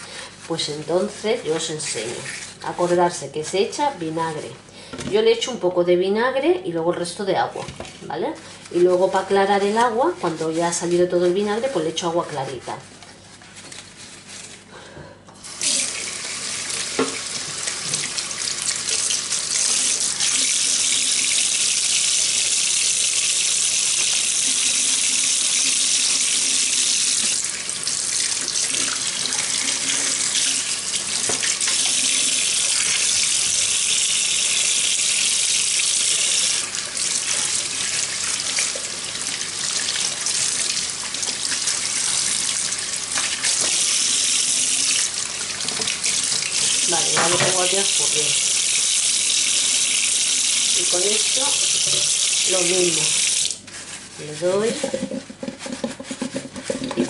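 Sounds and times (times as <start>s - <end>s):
tap running into steel sink: 17.0s - 18.1s, 47.1s - 47.7s.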